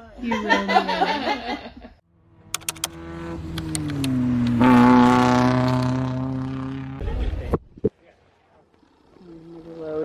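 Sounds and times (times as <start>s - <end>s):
sharp clicks: 2.5s - 4.6s.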